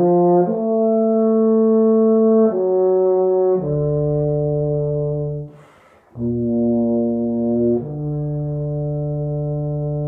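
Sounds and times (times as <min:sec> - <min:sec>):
quick breath: 0:05.5 - 0:06.2.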